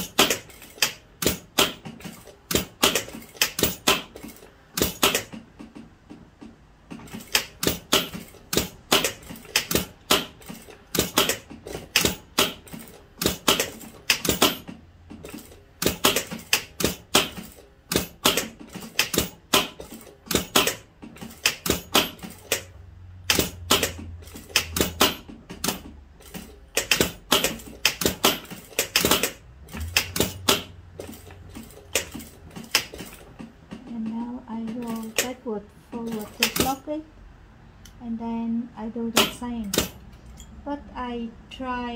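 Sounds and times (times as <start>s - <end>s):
sewing machine needle clicking: 7.0s - 35.4s, 36.0s - 36.9s
low motor hum: 29.4s - 31.6s.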